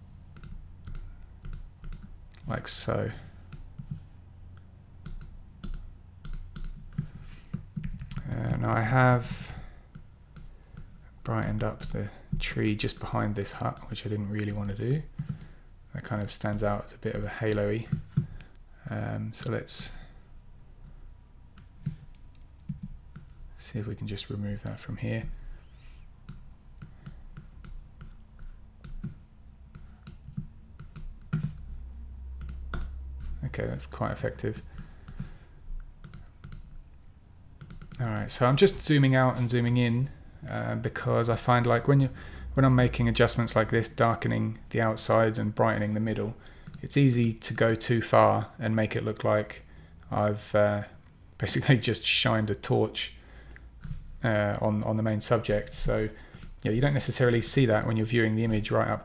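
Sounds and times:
faint low hum: 0.0s - 59.0s
keyboard clicks: 0.3s - 2.4s, 5.0s - 8.6s, 16.1s - 18.2s, 26.2s - 31.6s, 32.4s - 33.0s, 36.0s - 36.7s, 37.6s - 38.3s.

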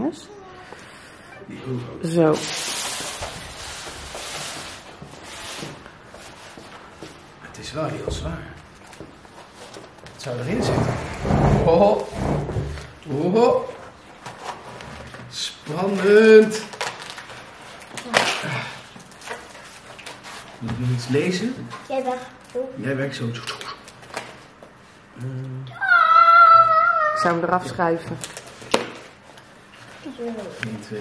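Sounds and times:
rustling and handling noise: 1.7s - 13.0s, 13.7s - 22.7s, 28.0s - 31.0s
paper rustling and crinkling: 15.8s - 18.4s, 19.0s - 21.0s.

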